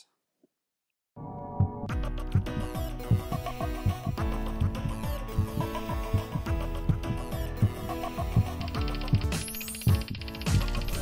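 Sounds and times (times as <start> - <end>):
kick drum thumps: 1.6 - 9.3
rapid even ticking: 2.4 - 11.0.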